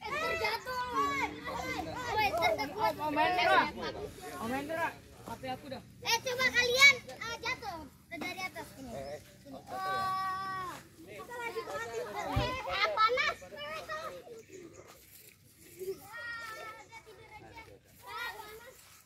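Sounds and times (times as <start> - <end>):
children shouting while playing: 0.0 - 3.7, 9.7 - 10.8.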